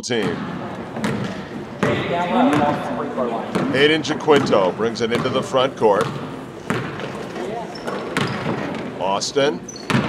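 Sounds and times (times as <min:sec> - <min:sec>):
basketball bouncing on hardwood floor: 0:00.2 - 0:03.8, 0:04.4 - 0:09.0, 0:09.7 - 0:10.0.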